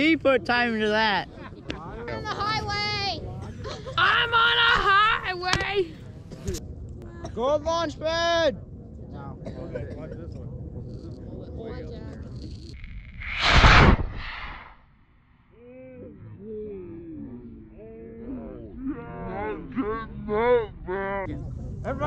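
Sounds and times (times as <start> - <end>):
rocket motor hiss: 13.2 - 14.8.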